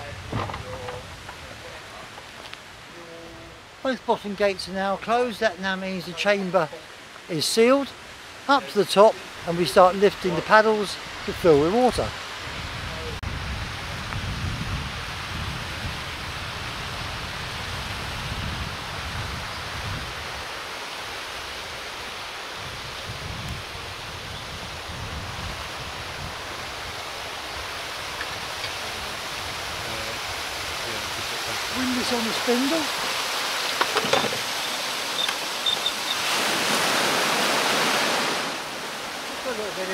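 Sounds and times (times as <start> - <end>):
wind buffeting microphone: 0.0 - 3.6, 9.2 - 21.9, 22.6 - 39.3
water rushing: 0.0 - 39.9.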